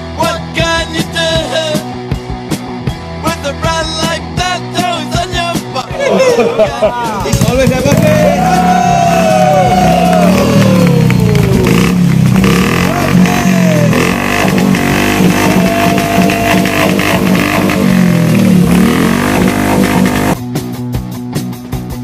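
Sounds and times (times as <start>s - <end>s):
rock music: 0.0s - 22.0s
motorcycle engine revving: 7.2s - 20.4s.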